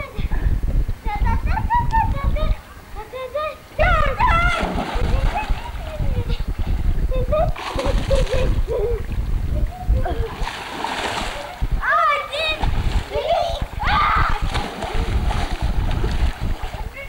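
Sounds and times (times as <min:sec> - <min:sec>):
water splashing: 0:03.8 - 0:17.0
children shouting: 0:13.2 - 0:14.5.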